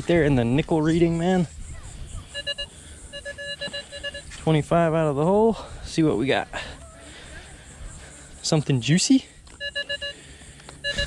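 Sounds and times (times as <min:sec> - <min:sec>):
metal detector beeps: 0:02.2 - 0:04.6, 0:09.4 - 0:11.0.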